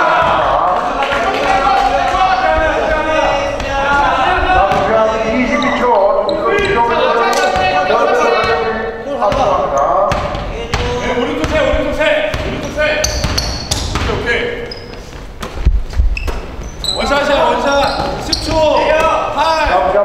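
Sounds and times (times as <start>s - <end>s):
players calling out: 0.0s - 15.1s, 16.4s - 20.0s
basketball bouncing on hardwood: 10.1s - 14.2s.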